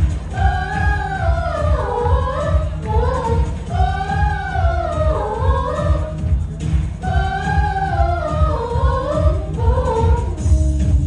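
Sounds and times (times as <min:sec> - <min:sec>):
girls singing into microphones: 0:00.0 - 0:11.0.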